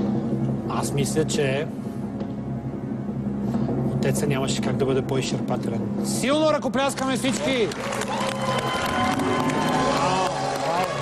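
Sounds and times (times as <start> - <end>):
studio audience applauding: 6.9 - 11.0.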